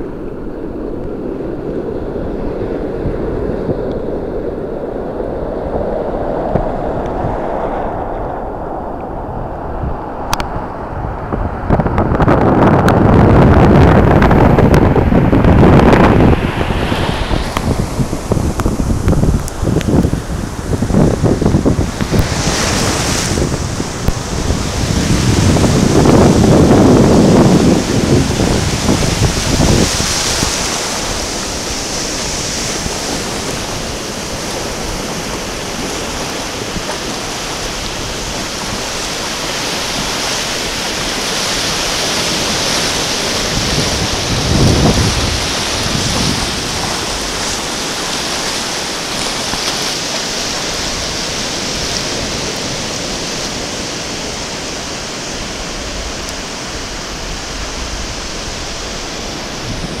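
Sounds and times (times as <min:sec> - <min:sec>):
ocean surf breaking: 0:00.0 - 1:00.0.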